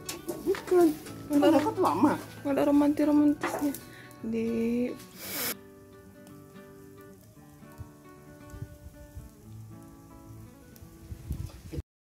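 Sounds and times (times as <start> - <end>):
charcoal fire crackling: 0.0 - 11.8
soft background music: 0.0 - 11.8.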